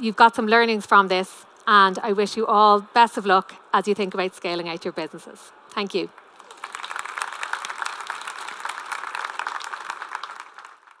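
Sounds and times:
audience applauding: 0:06.3 - 0:11.0.

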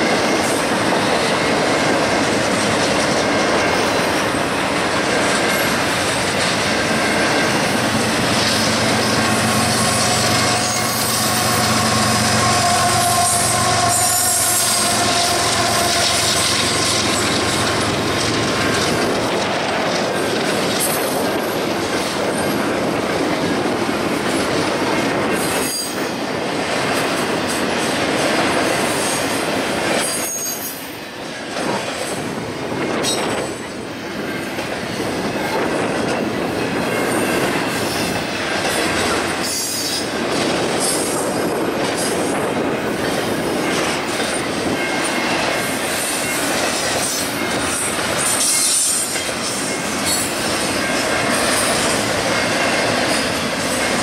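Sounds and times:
train wheels on rails: 0:00.0 - 0:54.0
high wheel squeal: 0:05.5 - 0:19.0, 0:46.2 - 0:54.0.

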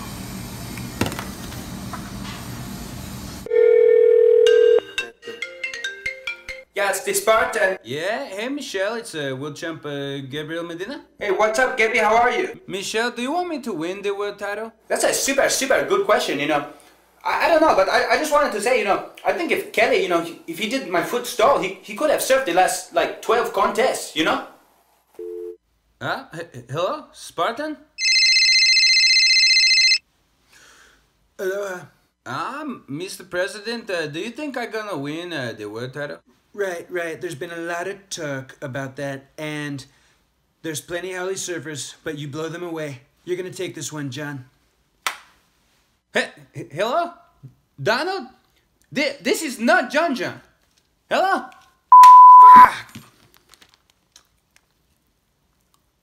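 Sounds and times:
steady electronic phone tone: 0:03.5 - 0:05.0, 0:28.0 - 0:30.0, 0:51.9 - 0:52.7
telephone ringing: 0:03.5 - 0:05.0, 0:28.0 - 0:30.0, 0:51.9 - 0:52.7
faint background hiss: 0:06.8 - 0:28.0
electronic ringtone melody: 0:28.0 - 0:30.0.

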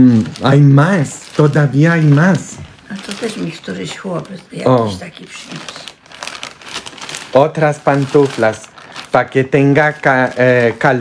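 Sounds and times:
plastic bag and wrapping crinkling: 0:00.0 - 0:11.0.

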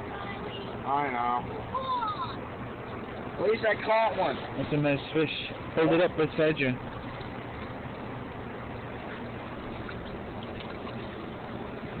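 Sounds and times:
river water flowing: 0:00.0 - 0:12.0.

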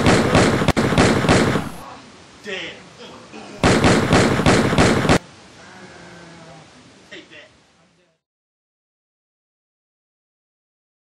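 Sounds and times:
mock machine-gun fire: 0:00.0 - 0:01.8, 0:03.6 - 0:05.2
faint voice: 0:01.8 - 0:02.2, 0:05.6 - 0:07.5.

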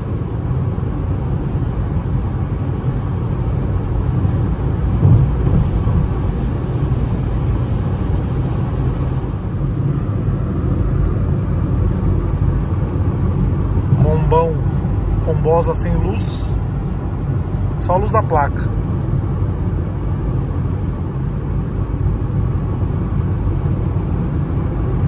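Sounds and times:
wind: 0:00.0 - 0:25.0
tyres rumbling on wet road: 0:03.8 - 0:09.3.

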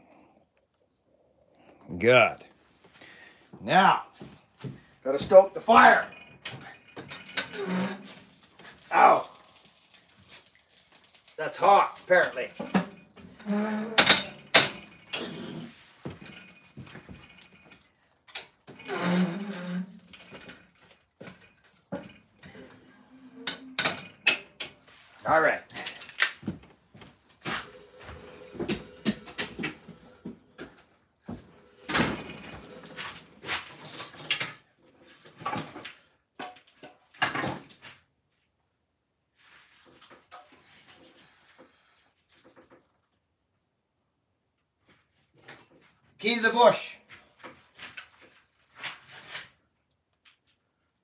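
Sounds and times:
things being handled: 0:04.2 - 0:37.9.

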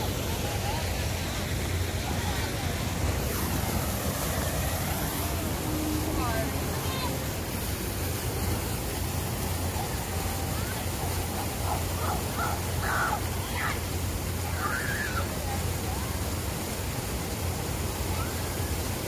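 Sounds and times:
faint distant voices: 0:00.0 - 0:19.0
steady rushing noise: 0:00.0 - 0:19.0.

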